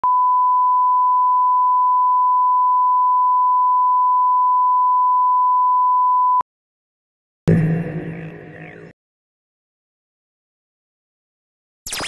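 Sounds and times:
steady reference tone: 7.5s - 8.9s.

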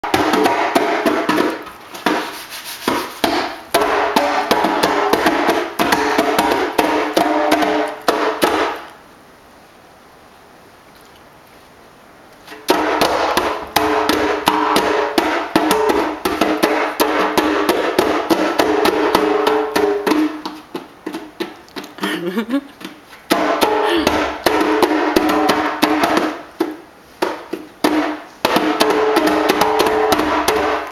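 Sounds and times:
percussive music with busy beat: 0.0s - 2.3s, 2.9s - 8.9s, 12.7s - 21.9s, 23.3s - 30.9s
toddler slapping hand drum: 0.0s - 8.9s, 12.4s - 30.9s.

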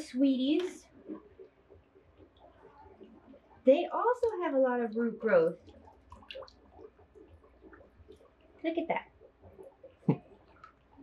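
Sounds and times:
water dripping into water: 0.0s - 11.0s.

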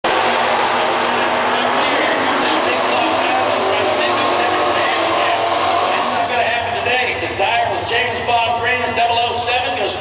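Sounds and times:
racing car engines running loudly: 0.0s - 10.0s
announcer over public address: 0.1s - 10.0s.

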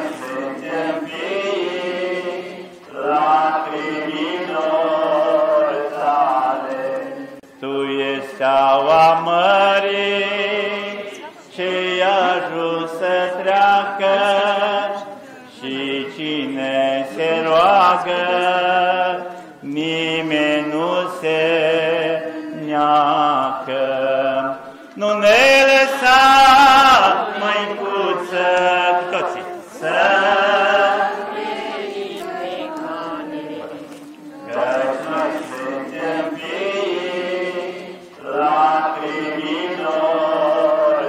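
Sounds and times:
man singing a hymn: 0.0s - 31.3s, 34.0s - 41.0s.

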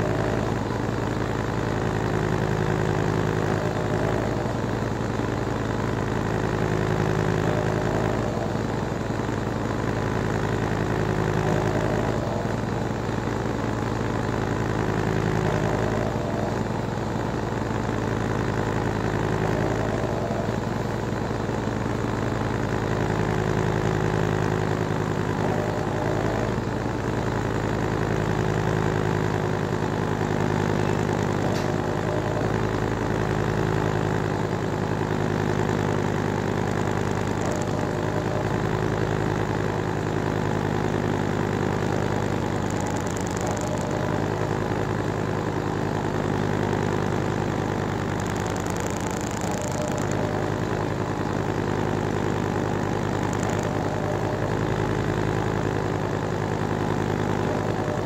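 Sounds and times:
washing machine spin cycle: 0.0s - 58.0s.

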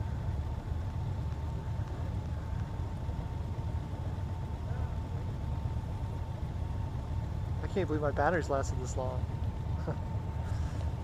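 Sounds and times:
motorcycle engines idling: 0.0s - 11.0s.

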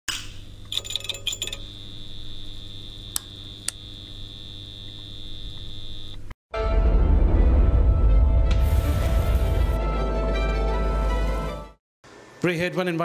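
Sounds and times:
sharp clicks: 3.1s - 3.8s
crackling clicks: 3.1s - 3.9s.

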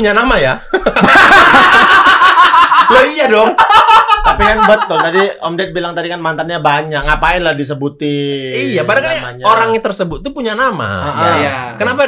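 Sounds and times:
men laughing loudly: 0.7s - 5.4s.

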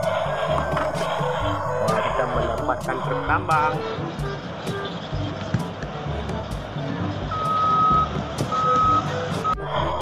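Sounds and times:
truck reversing alarm beeps: 7.3s - 10.0s.

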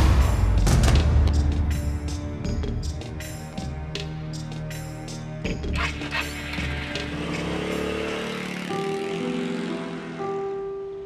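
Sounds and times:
background music with held notes: 0.0s - 11.0s
motor scooter pulling away: 5.8s - 10.6s.

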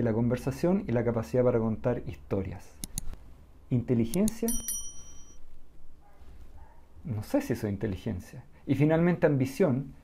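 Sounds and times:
bright bell-like chime: 4.5s - 5.4s.

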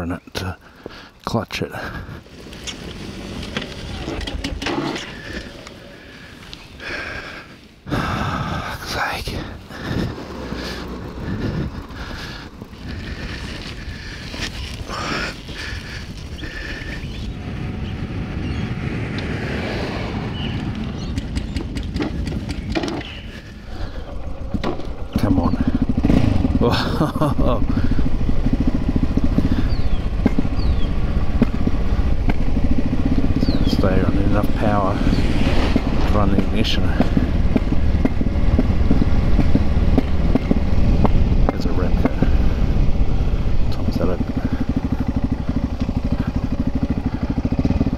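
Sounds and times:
wind and tyre noise: 0.0s - 47.9s
motorcycle engine running: 1.8s - 47.9s.

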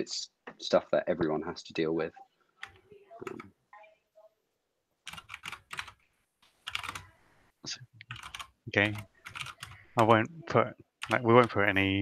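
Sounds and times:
computer keyboard typing: 5.0s - 6.0s, 6.6s - 7.1s, 8.0s - 10.0s, 11.0s - 11.8s.

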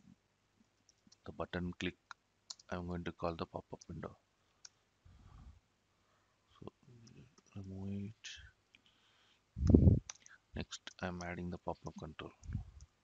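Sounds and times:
computer keys clicking: 0.8s - 1.2s, 2.0s - 2.7s, 10.0s - 12.9s.

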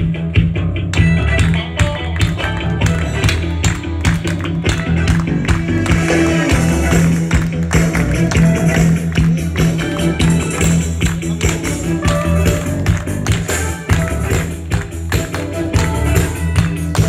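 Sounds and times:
pop song on keyboard and guitar: 1.0s - 17.0s.

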